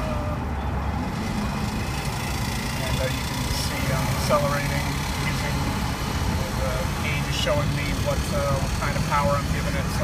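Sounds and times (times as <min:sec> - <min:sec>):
road and tyre rumble in car: 0:00.0 - 0:10.0.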